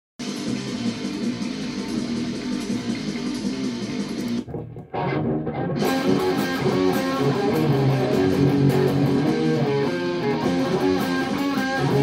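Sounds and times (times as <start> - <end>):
electric guitar metal riff: 0.2 - 12.0.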